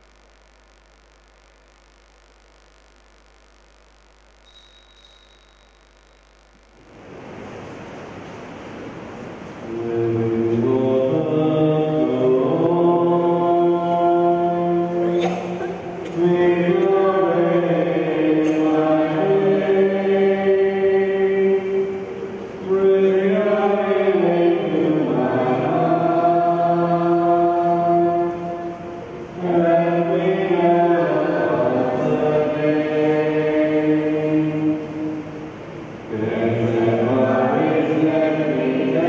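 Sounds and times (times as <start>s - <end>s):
voices singing a slow hymn: 9.7s - 39.0s.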